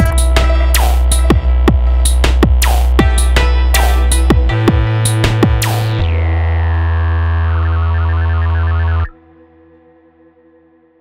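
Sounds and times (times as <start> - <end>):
low synthesizer drone: 0.0 - 10.5.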